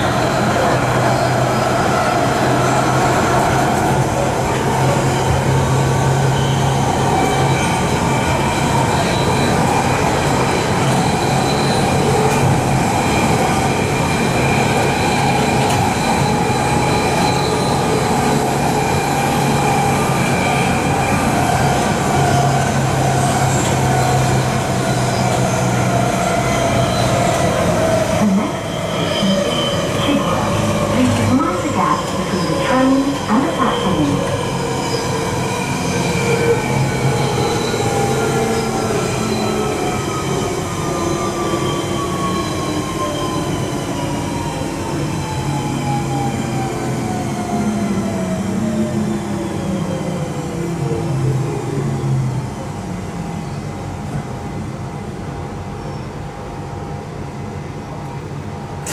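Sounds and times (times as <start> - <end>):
train wheels on rails: 0.0 - 50.5, 52.9 - 58.9.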